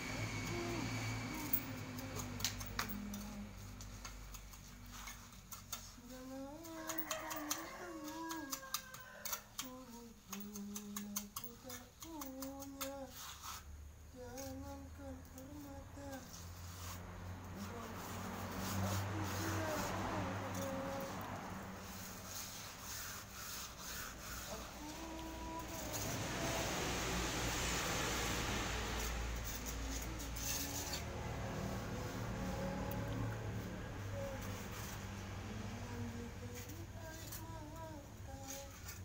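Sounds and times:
trowel scraping mortar: 18.0 - 25.0.

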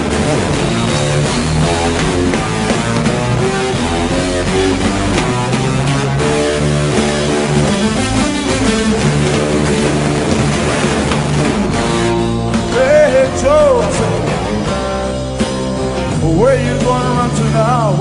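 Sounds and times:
instrumental rock music: 0.0 - 18.0.

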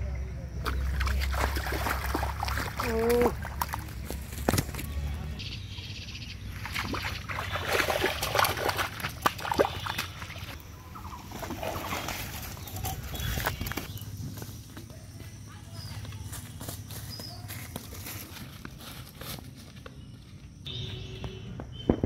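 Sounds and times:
fish slapping on mud: 0.6 - 4.8, 6.6 - 10.6.

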